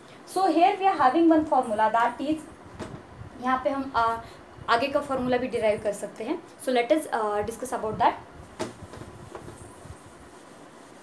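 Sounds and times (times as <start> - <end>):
eraser rubbing on whiteboard: 8.8 - 11.0.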